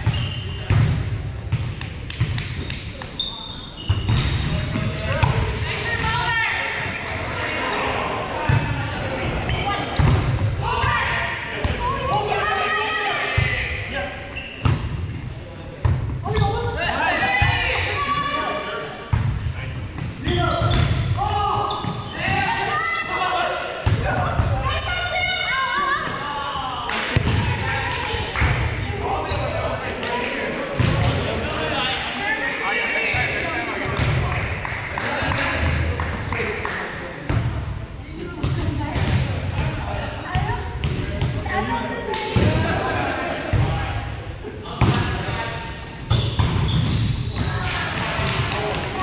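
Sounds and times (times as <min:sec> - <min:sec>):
players calling and chatting: 0:00.0 - 0:49.0.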